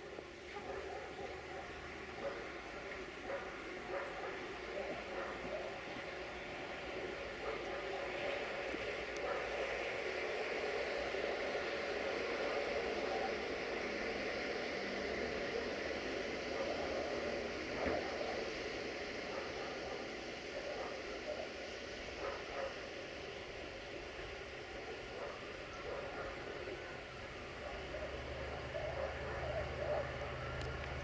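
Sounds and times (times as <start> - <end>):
hiss of noise: 0.0 - 31.0
locomotive engine hum: 0.0 - 31.0.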